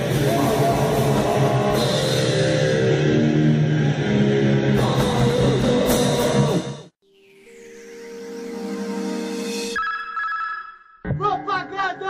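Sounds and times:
drums: 0.0s - 3.0s, 4.7s - 6.9s
noisecore punk band playing: 0.0s - 6.8s
distorted guitar: 0.0s - 6.9s, 8.1s - 12.0s.

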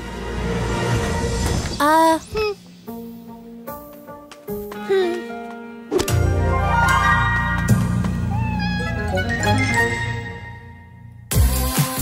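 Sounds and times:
background music: 0.0s - 12.0s
cartoon kitten meowing: 8.3s - 9.1s.

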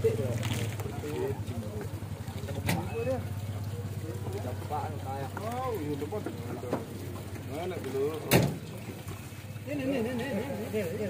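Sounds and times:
boat engine idling: 0.0s - 11.0s
men talking: 0.0s - 11.0s.

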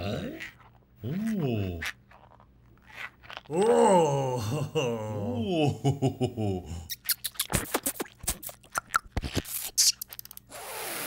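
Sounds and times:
cartoon character groaning voice: 3.5s - 5.6s.

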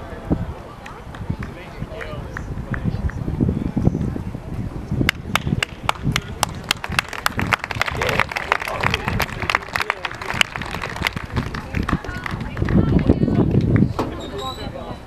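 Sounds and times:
distant voices: 0.0s - 15.0s.

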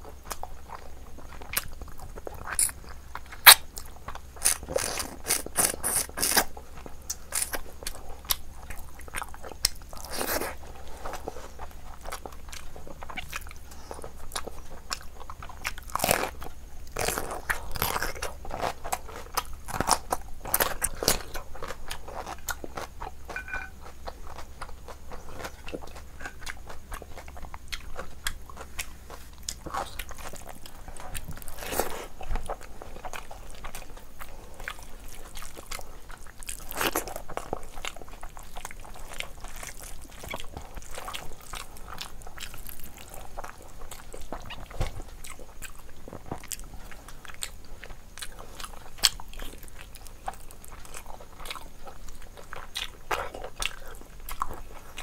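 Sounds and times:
wet chewing mouth sounds: 0.2s - 55.0s.

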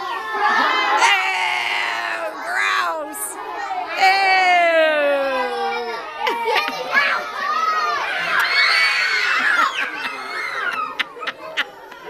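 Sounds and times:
children shouting: 0.0s - 12.0s.

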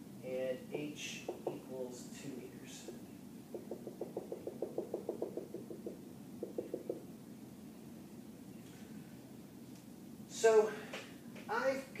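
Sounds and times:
marker tapping on a whiteboard: 1.3s - 1.7s, 2.9s - 7.0s.

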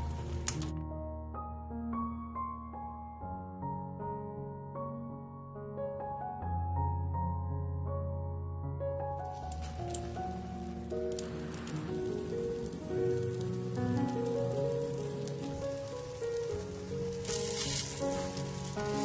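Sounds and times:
slices sizzling in hot oil: 0.0s - 0.7s, 9.3s - 19.0s
background music: 0.0s - 19.0s.

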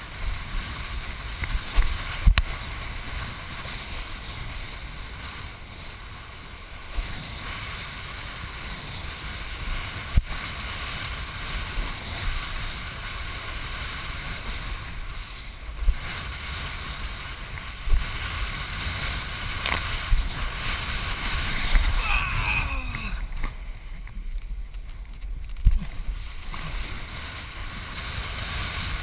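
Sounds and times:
water rushing under board: 0.0s - 29.0s
wind buffeting camera: 0.0s - 29.0s.

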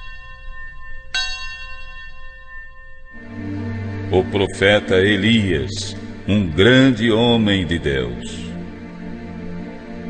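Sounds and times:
bell ringing: 0.0s - 4.3s.

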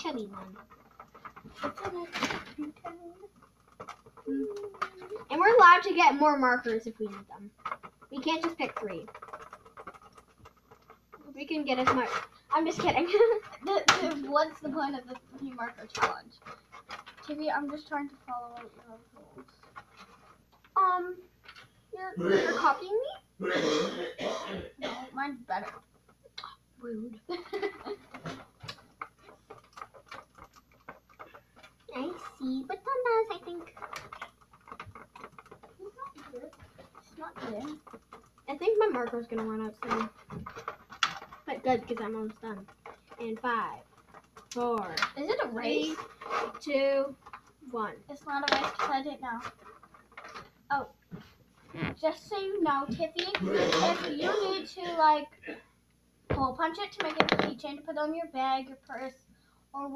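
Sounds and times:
marker scratching on plastic: 0.0s - 20.5s, 27.3s - 50.5s.

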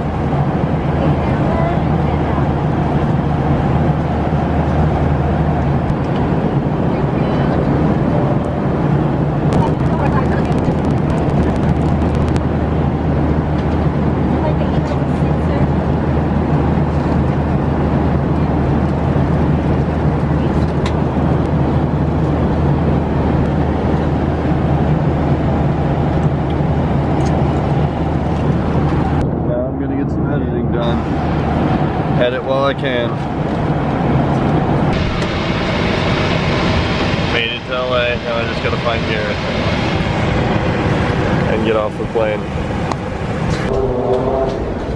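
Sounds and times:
airliner cabin engine roar: 0.0s - 44.9s
voices: 9.6s - 11.1s, 37.3s - 40.1s.

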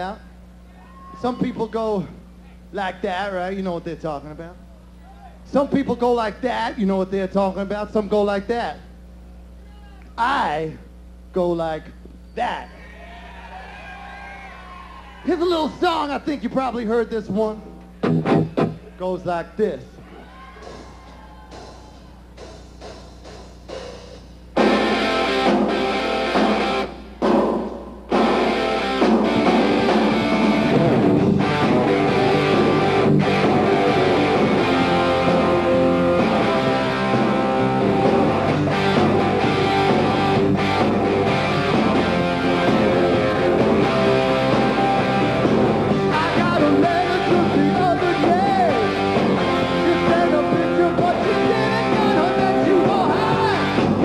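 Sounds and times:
bass guitar: 15.4s - 23.0s, 24.4s - 54.0s
loud guitar chords: 17.6s - 18.9s, 20.6s - 54.0s
live hard rock band: 24.5s - 54.0s.

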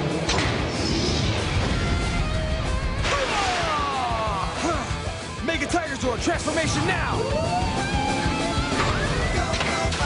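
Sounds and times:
background music: 0.0s - 10.0s
sharp impact: 2.7s - 4.2s
mechanical crashing sound effects: 2.8s - 4.0s.

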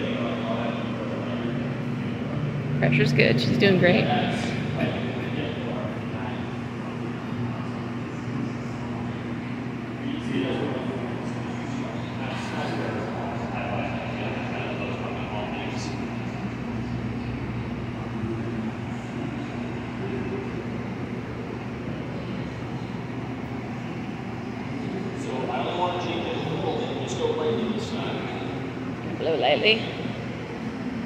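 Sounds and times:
furnace roar and ventilation hum: 0.0s - 31.0s.

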